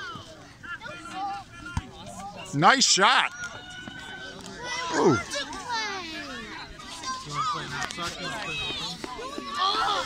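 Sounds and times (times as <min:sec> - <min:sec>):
children and spectators calling out: 0:00.0 - 0:10.0.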